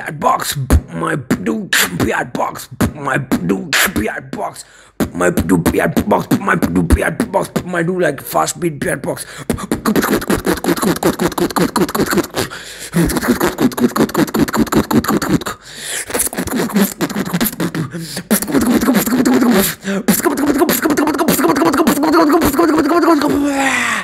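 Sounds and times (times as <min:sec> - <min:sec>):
beatboxing into a microphone: 0:00.0 - 0:24.0
held pitched vocal tone: 0:00.0 - 0:24.0.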